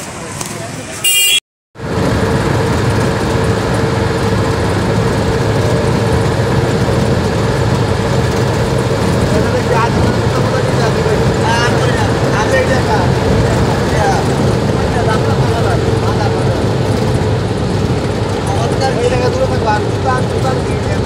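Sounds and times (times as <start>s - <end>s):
bus engine and road noise: 0.0s - 21.0s.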